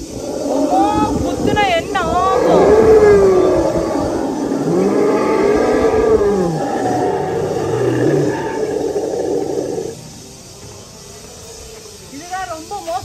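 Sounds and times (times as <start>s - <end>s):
dinosaur roar sound effect: 0.1s - 10.0s.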